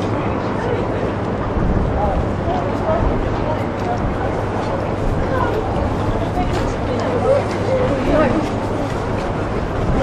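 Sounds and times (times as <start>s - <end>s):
low rumble: 1.2s - 10.0s.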